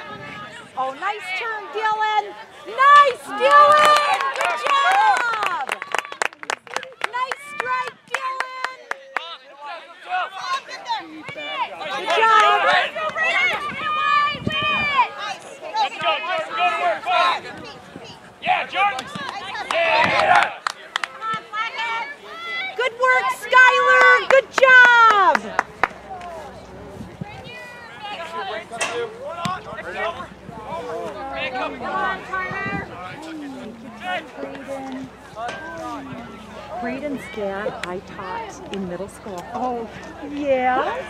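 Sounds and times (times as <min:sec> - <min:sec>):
spectators talking and calling: 0:00.0 - 0:41.0.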